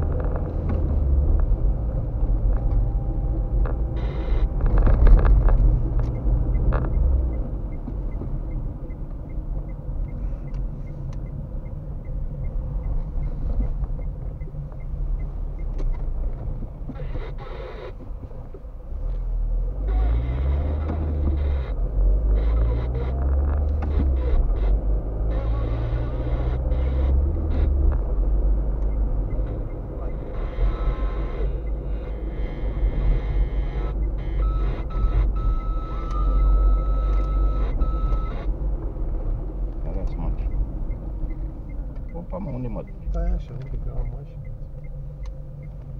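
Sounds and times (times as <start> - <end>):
car engine and road rumble: 0.0 - 45.9
high electronic beep: 33.1 - 38.5.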